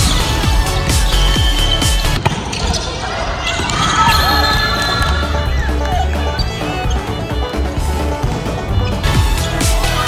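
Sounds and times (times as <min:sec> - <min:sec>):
background music: 0:00.0 - 0:10.0
players' voices: 0:02.4 - 0:10.0.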